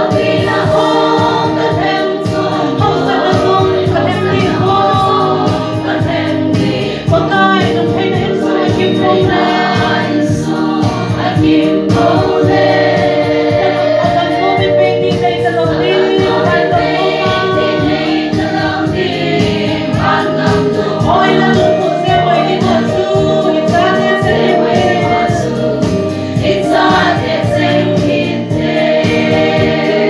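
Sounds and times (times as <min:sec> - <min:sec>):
congregation singing: 0:00.0 - 0:30.0.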